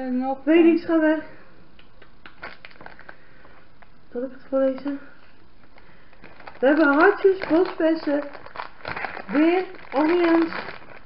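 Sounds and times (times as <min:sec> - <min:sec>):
plastic wrapper crinkling: 0:02.3 - 0:04.0, 0:04.6 - 0:11.0.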